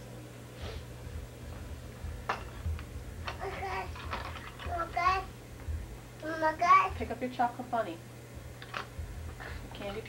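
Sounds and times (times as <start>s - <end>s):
tape hum: 1.0s - 7.2s
toddler babbling: 3.4s - 4.0s, 4.6s - 5.3s.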